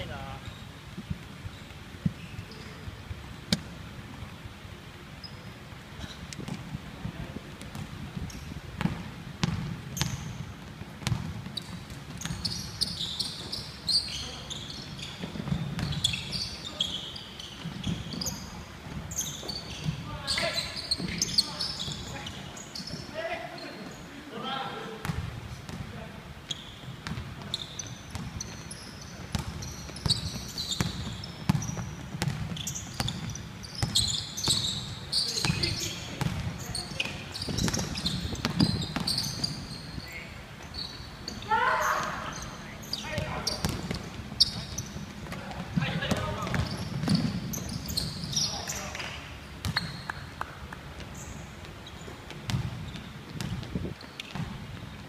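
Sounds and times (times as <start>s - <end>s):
shoes squeaking: 0.0s - 3.7s, 5.1s - 25.7s, 26.4s - 55.0s
basketball dribbled on wooden floor: 7.7s - 12.6s, 29.3s - 34.6s.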